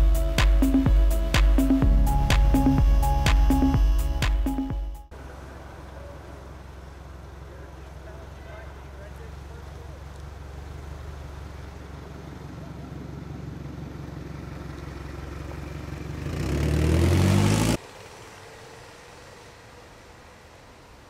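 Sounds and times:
outdoor background: 0.0 - 21.0
vehicle engine running: 1.6 - 21.0.

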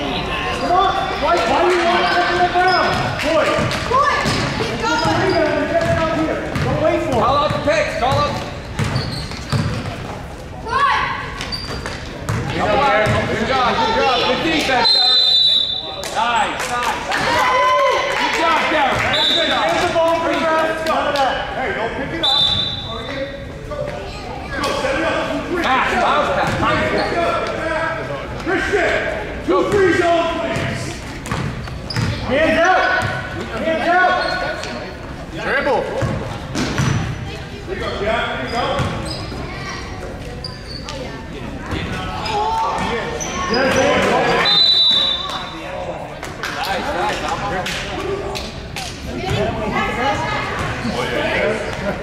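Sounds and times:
basketball bouncing on gym floor: 2.8 - 10.0, 11.7 - 13.3, 30.6 - 32.2, 36.0 - 37.1.

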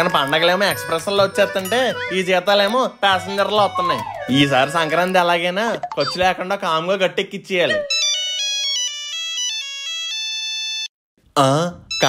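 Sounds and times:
smartphone ringtone melody: 0.0 - 6.4, 7.7 - 10.9.

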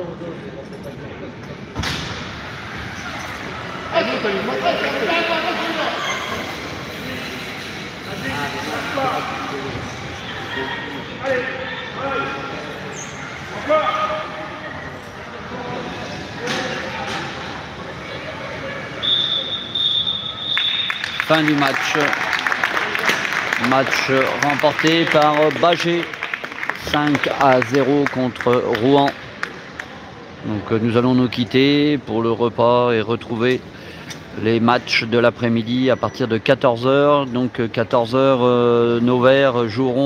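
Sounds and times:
spectators chattering: 0.0 - 40.0
referee's whistle blast: 19.0 - 21.2.

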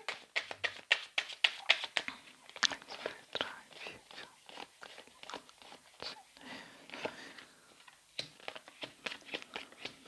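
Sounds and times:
playing cards being shuffled: 0.0 - 6.0, 8.1 - 10.0.

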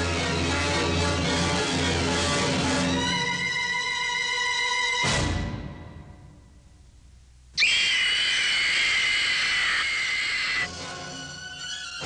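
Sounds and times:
woman screaming: 7.6 - 10.7.

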